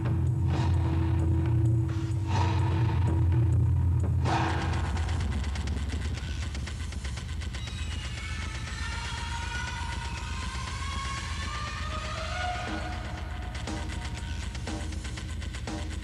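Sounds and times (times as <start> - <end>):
low rumble: 0.0 - 7.5.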